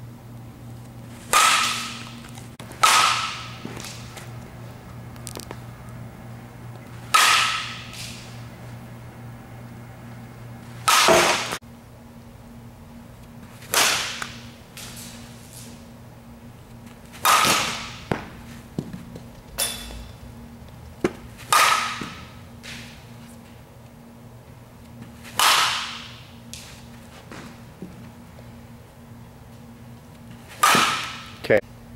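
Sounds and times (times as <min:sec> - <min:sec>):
bat cracking a ball: 0:01.2 - 0:04.3, 0:07.0 - 0:08.4, 0:10.8 - 0:11.6, 0:13.6 - 0:15.0, 0:17.1 - 0:19.0, 0:21.0 - 0:23.0, 0:25.2 - 0:26.6, 0:30.5 - 0:31.4.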